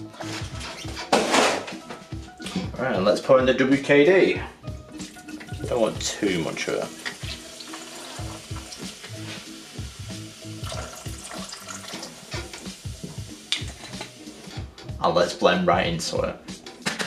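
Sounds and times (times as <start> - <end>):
background music with beat: 0.0 - 17.0
liquid pouring onto ice: 10.6 - 12.1.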